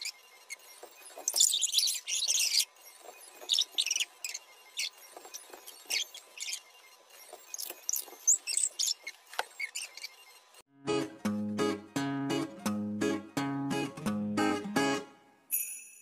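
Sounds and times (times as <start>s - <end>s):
small squeaks: 0.0s - 10.6s.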